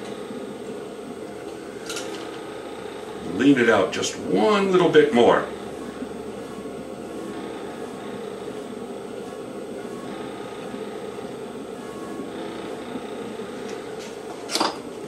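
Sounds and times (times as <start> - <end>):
potter's wheel humming: 0.0 - 15.0.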